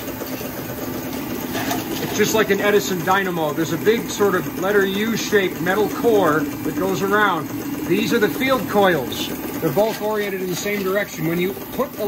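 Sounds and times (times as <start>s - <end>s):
model steam engine running: 0.0s - 12.0s.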